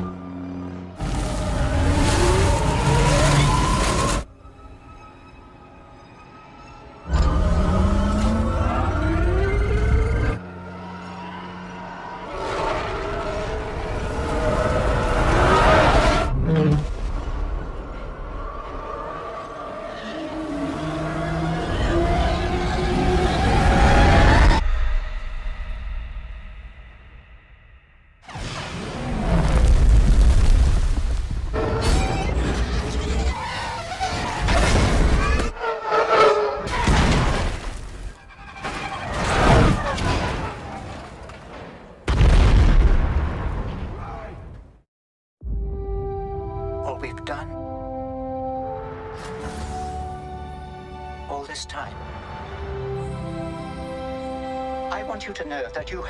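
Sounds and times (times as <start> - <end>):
engine howl with wavering pitch: 6.9 - 16.3.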